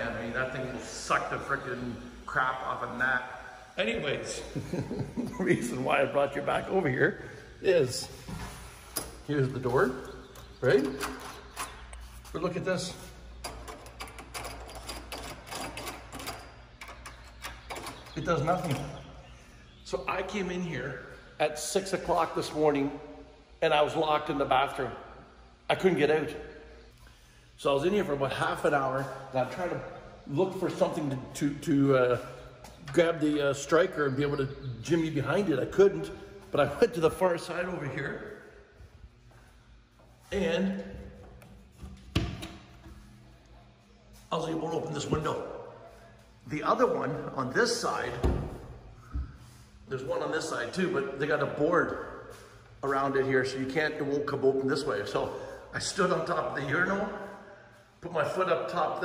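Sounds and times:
exhaust fan hum: 0.0s - 59.0s.

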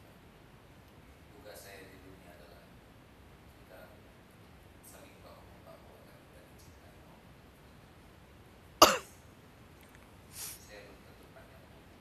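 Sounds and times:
person coughing: 8.8s - 9.1s.

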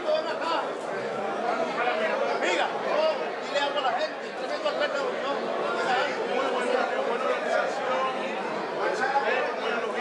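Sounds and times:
crowd of people talking: 0.0s - 10.0s.

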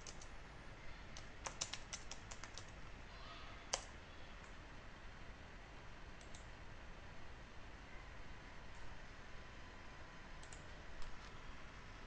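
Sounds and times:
computer mouse clicks: 0.0s - 0.3s, 6.2s - 6.5s, 10.4s - 11.2s
steady low hiss: 0.0s - 12.0s.

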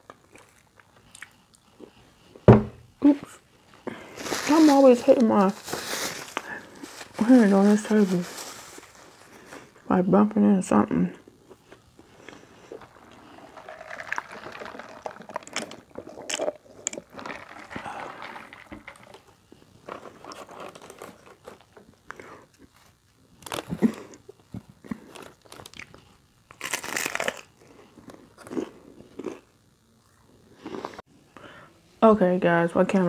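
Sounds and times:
crunchy bites and chewing: 0.0s - 2.0s, 11.3s - 19.2s, 20.0s - 29.7s
food shell rustling and crackling: 3.9s - 9.8s, 11.3s - 29.3s.

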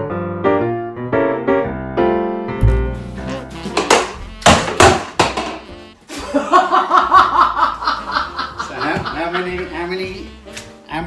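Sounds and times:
background music: 0.0s - 11.0s
sharp knocks: 3.7s - 5.7s
people laughing: 6.1s - 10.0s.

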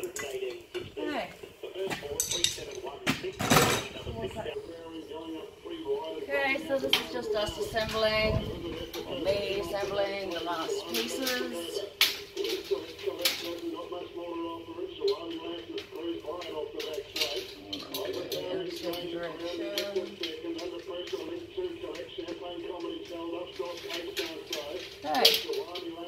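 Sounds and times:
hand tools clicking on metal: 1.9s - 2.9s, 8.8s - 13.7s, 15.0s - 23.0s, 23.6s - 26.0s.

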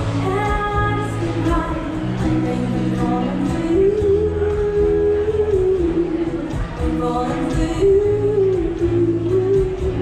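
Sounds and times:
acoustic guitar: 0.0s - 10.0s.

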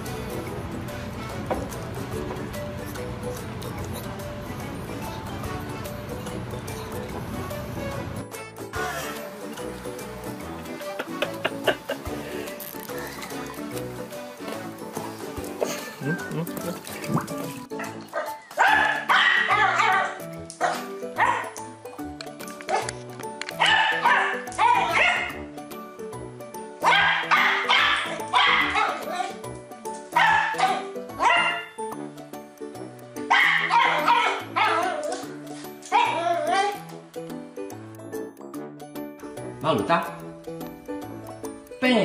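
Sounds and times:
background music with bass line: 4.3s - 22.4s
puppy yapping: 17.8s - 21.5s, 23.6s - 25.4s, 26.8s - 29.4s, 30.2s - 31.8s, 33.3s - 35.3s, 35.9s - 36.8s.

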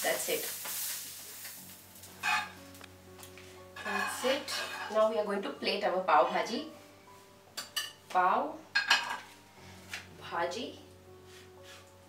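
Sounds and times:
bread sizzling on a hot griddle: 0.0s - 2.6s
soft background music: 0.0s - 12.0s.

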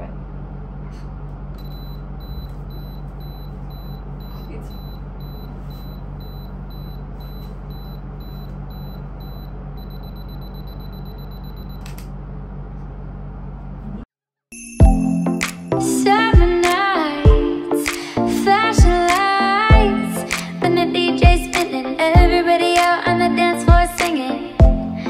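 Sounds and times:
low hum: 0.0s - 14.0s
self-timer beeps: 1.6s - 11.9s.

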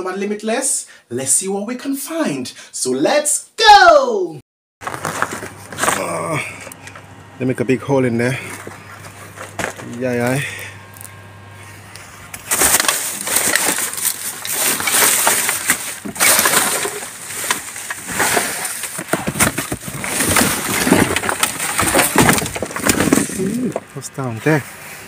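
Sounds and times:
bin bags and cardboard rustling: 4.8s - 6.6s, 8.3s - 11.1s, 12.3s - 24.6s.

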